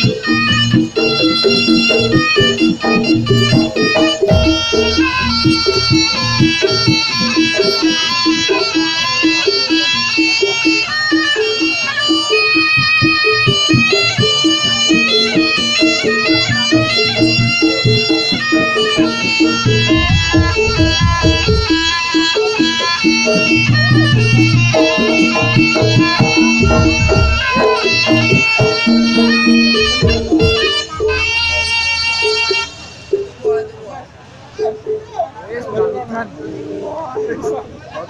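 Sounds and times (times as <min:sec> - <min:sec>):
steady drum beat: 0:00.0 - 0:08.5, 0:12.8 - 0:32.0
wavering melody line: 0:00.0 - 0:33.3
heavy bass: 0:01.5 - 0:07.4, 0:17.4 - 0:32.1.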